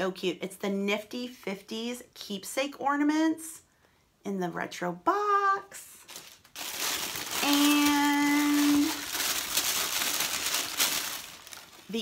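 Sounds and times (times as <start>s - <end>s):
packaging rustling and crinkling: 6.0s - 12.0s
sharp packaging crackle: 6.0s - 12.0s.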